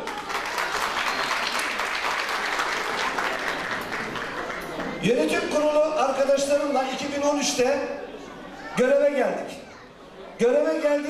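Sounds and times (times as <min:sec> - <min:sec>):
audience applauding: 0:00.0 - 0:05.0.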